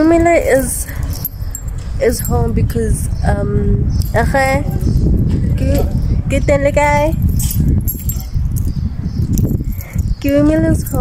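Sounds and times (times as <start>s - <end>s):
wind rumble on microphone: 0.0s - 11.0s
keys jangling: 0.4s - 2.6s, 4.0s - 6.2s, 6.8s - 11.0s.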